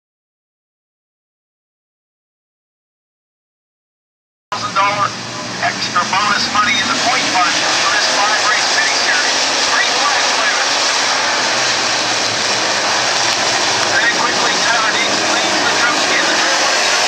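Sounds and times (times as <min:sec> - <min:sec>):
race car engines: 0:04.5 - 0:17.0.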